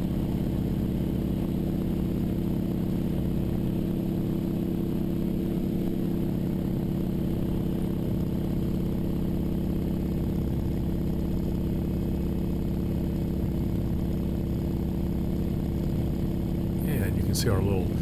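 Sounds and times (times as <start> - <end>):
propeller plane engine drone: 0.0 - 18.0.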